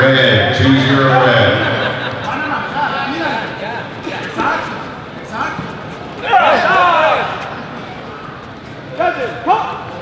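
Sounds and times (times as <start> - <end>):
voices talking in large hall: 0.0 - 10.0.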